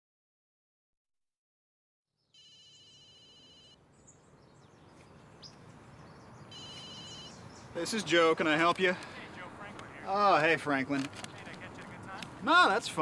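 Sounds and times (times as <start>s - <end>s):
bird chirps: 2.2s - 8.0s
faint outdoor ambience: 2.2s - 13.0s
electronic telephone ringer trilling: 2.4s - 3.8s, 6.5s - 7.4s.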